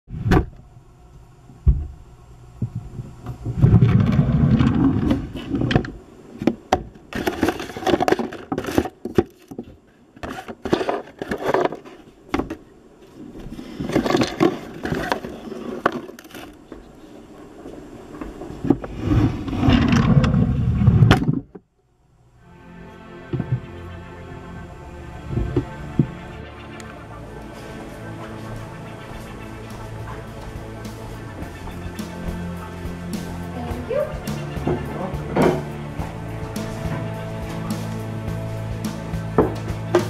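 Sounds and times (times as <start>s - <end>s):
heavy rumbling: 0.1s - 6.3s, 18.6s - 21.5s, 22.2s - 40.0s
microphone handling noise: 2.6s - 6.0s, 18.3s - 21.6s.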